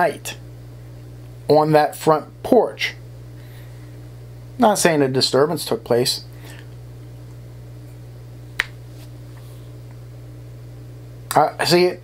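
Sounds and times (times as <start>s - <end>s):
low hum of room tone: 0.0s - 12.0s.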